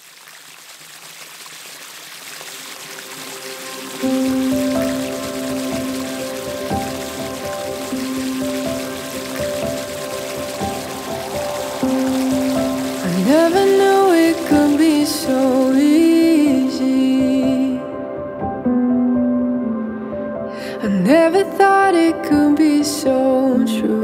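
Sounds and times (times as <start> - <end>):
fountain water pattering on pond: 0.0 - 17.7
soft music of long notes: 2.6 - 24.0.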